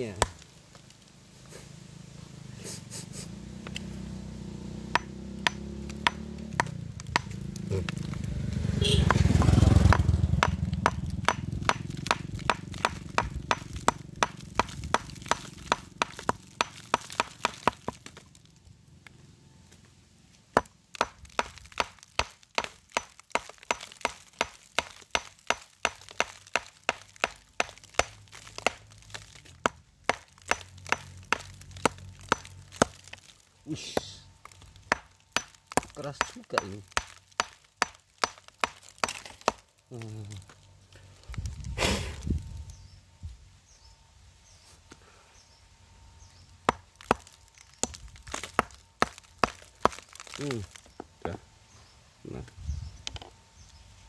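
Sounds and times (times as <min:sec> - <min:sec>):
hammer chipping at rock: 0:00.1 - 0:00.4, 0:04.9 - 0:08.3, 0:09.0 - 0:18.3, 0:20.5 - 0:39.7, 0:46.6 - 0:50.9
low rumble: 0:40.6 - 0:43.4.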